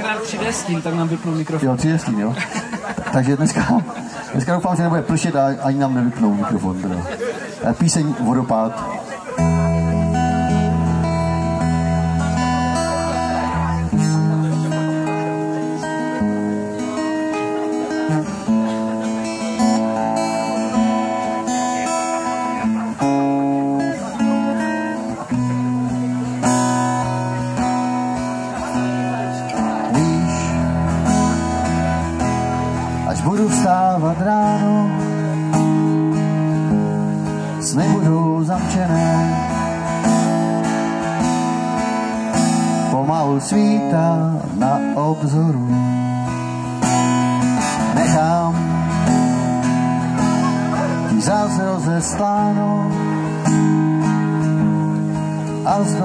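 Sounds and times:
acoustic guitar strumming chords: 0.0 - 56.0.

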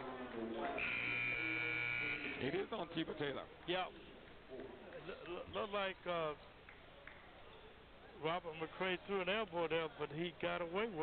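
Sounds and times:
arena horn buzz: 0.8 - 2.4.

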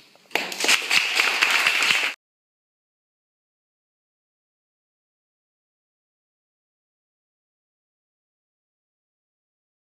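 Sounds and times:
audience applauding: 0.8 - 2.2.

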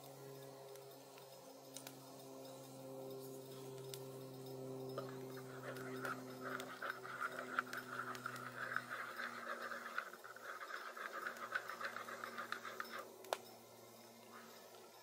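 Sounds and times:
spoon scraping metal cup: 5.0 - 13.1.

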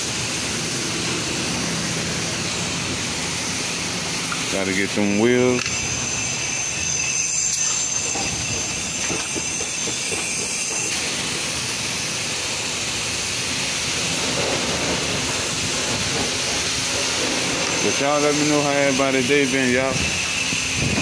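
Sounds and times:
pressure washer spraying water: 0.0 - 21.0.

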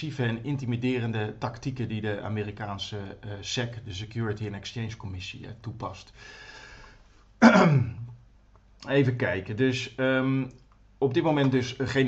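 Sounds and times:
man clearing throat: 7.4 - 8.2.

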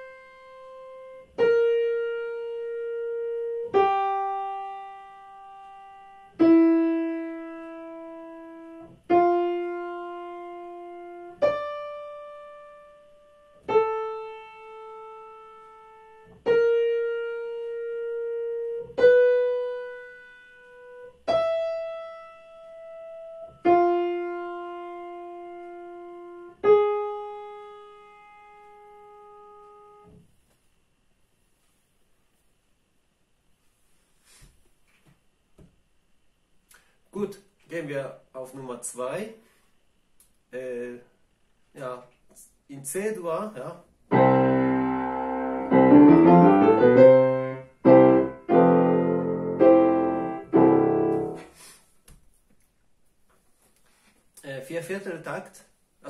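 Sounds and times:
piano melody: 0.0 - 30.1, 44.1 - 51.5.

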